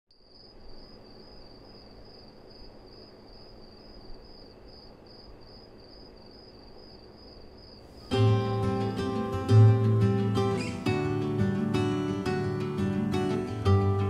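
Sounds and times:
crickets chirping: 0.1 - 14.0.

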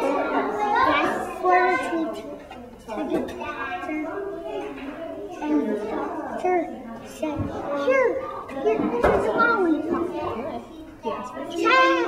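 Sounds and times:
young boy speaking: 0.0 - 12.0.

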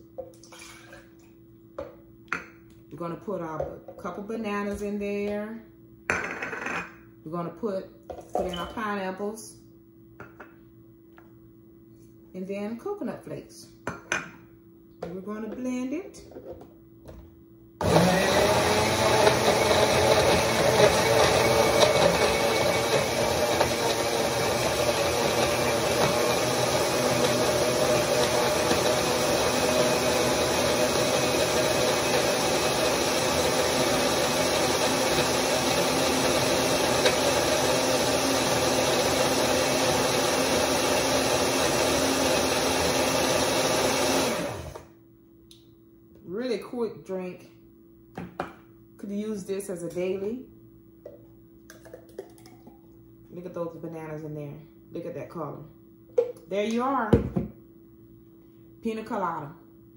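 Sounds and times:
blender running: 17.8 - 44.9.

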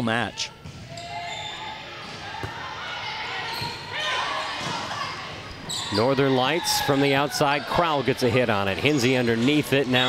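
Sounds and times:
chatter of players and spectators: 0.0 - 10.0.

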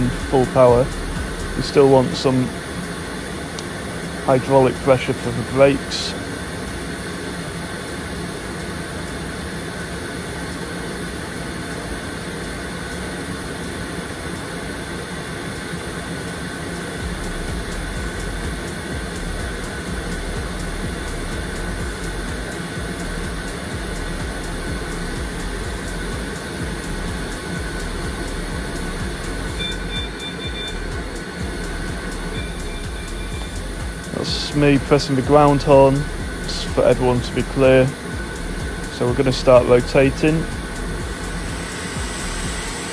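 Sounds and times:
deep hydraulic hum: 0.0 - 6.5, 17.0 - 42.9
aircraft auxiliary power unit running: 0.0 - 42.9
cooling fans: 0.0 - 42.9.

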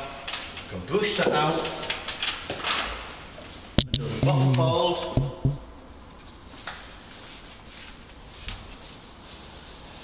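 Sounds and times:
wallpaper rustling: 6.6 - 10.0.

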